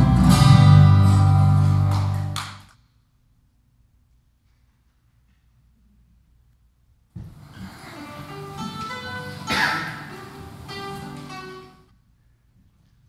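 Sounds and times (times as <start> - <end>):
recorded band music: 0.0 - 2.6, 7.6 - 11.8.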